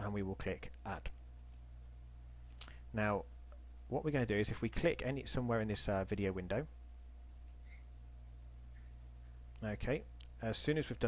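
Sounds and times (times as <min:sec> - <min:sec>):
steady low hum: 0:00.0 - 0:11.0
computer mouse clicks: 0:01.4 - 0:01.7, 0:07.3 - 0:07.8.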